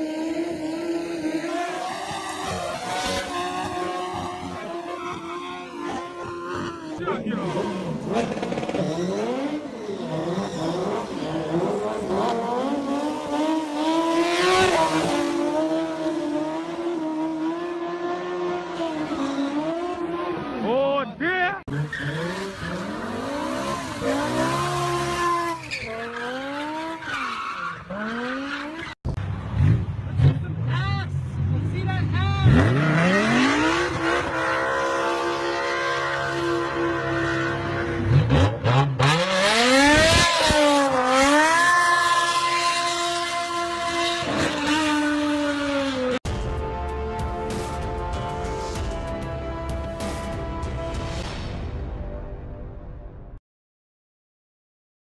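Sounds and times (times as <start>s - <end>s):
engines revving high: 0.0s - 20.7s, 21.7s - 30.7s, 31.4s - 46.2s
crowd shouting and talking: 0.9s - 9.5s
tyres squealing on road: 1.3s - 11.6s, 21.7s - 29.0s
deep engine revving: 22.2s - 25.6s.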